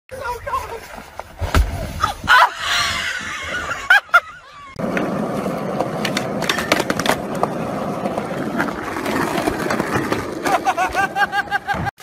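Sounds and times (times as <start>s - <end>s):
skateboard wheels rolling on concrete: 0.1s - 12.0s
skateboard clacking on metal rail: 5.8s - 7.5s.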